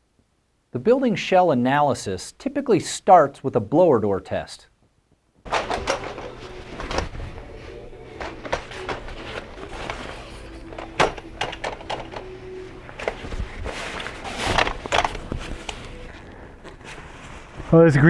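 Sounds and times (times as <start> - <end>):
knocks and clicks: 5.4 - 7.1, 10.7 - 12.3
fabric rustling: 5.4 - 11.0, 12.1 - 17.8.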